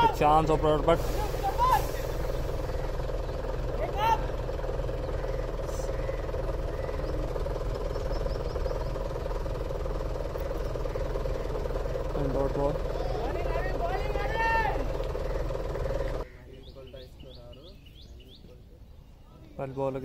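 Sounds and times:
steady drone with low rumble: 0.0s - 16.4s
voices calling out: 0.0s - 20.0s.

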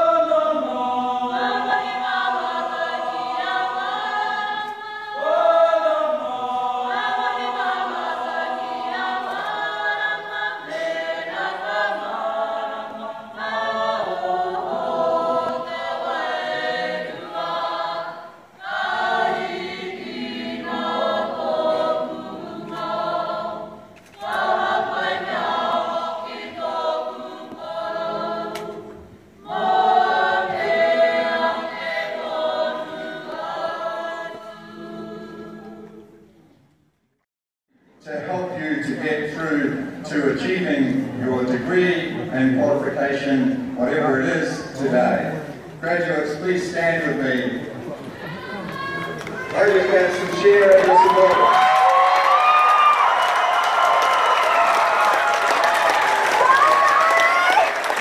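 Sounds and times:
choir singing a cappella: 0.0s - 36.5s.

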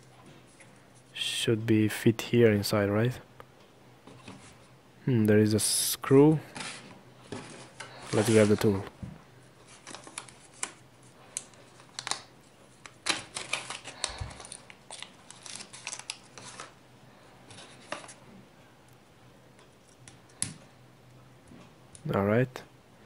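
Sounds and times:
plastic bag rustling and crinkling: 6.4s - 9.0s, 9.6s - 16.8s.

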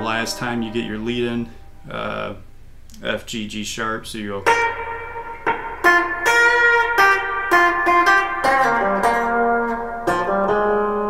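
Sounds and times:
electric guitar picking single notes: 0.0s - 3.2s, 3.8s - 11.0s.

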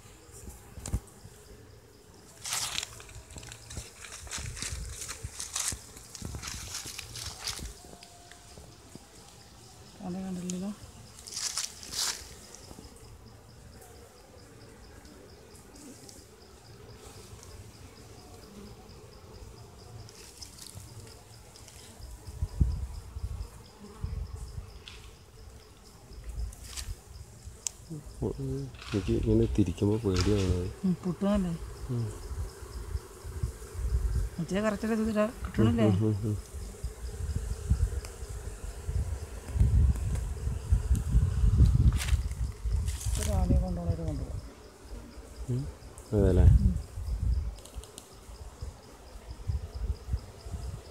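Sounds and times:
honey bees humming: 0.0s - 50.9s.

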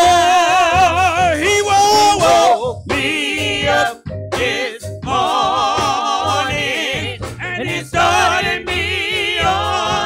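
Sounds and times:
band accompaniment: 0.0s - 10.0s
gospel singing: 0.0s - 10.0s.

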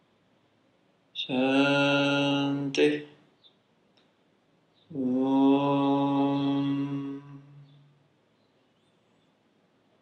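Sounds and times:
man chanting long note: 4.9s - 7.9s.

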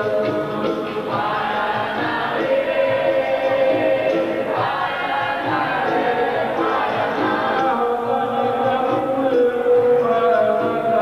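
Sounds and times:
group singing a chorus: 0.0s - 11.0s.

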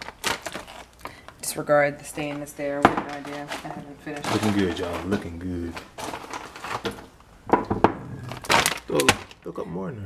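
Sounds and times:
things rustling on a counter: 0.0s - 9.5s.

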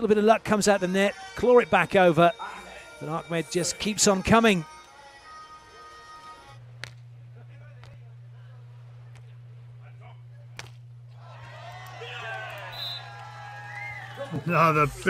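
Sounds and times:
steady low hum: 6.3s - 15.0s
volleyball hits: 10.4s - 14.3s
crowd cheering: 11.0s - 15.0s
players shouting: 11.1s - 15.0s.

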